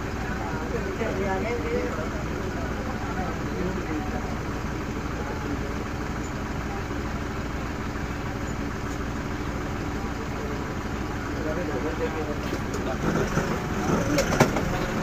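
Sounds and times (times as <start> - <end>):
jeep engine idling: 0.0 - 15.0.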